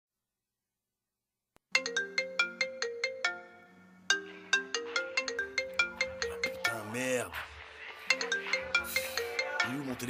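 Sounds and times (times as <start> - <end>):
phone ringtone bell-like melody: 1.7 - 7.1, 8.1 - 10.0.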